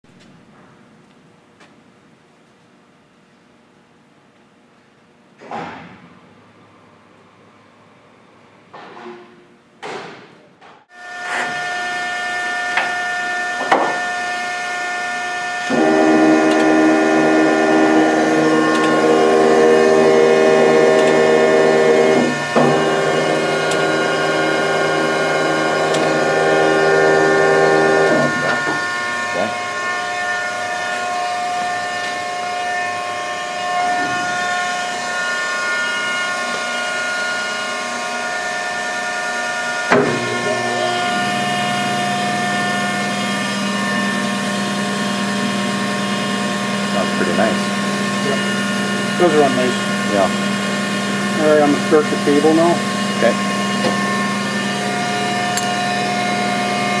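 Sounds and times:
grinder motors whining: 0:10.9 - 0:57.0.

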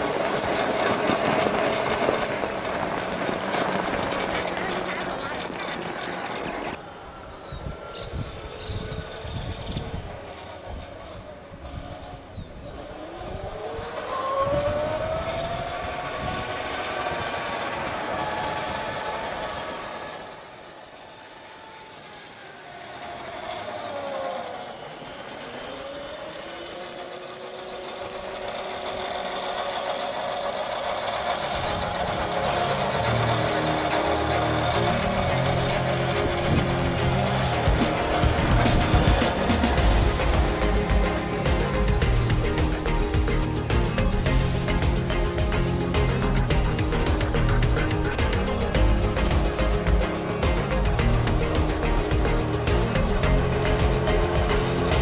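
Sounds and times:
electric motor whine: 0:00.0 - 0:55.0
music: 0:32.2 - 0:55.0.

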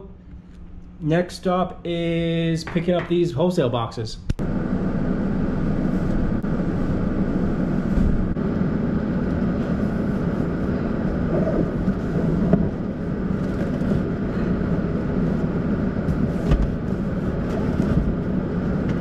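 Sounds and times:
vehicle engine rumble: 0:04.4 - 0:19.0.

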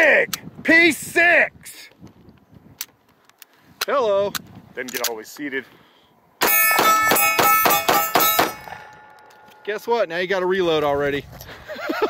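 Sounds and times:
steel targets clanging: 0:06.4 - 0:10.0.

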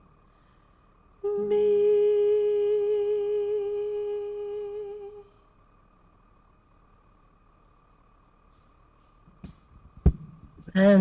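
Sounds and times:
person humming a long note: 0:01.2 - 0:05.4.

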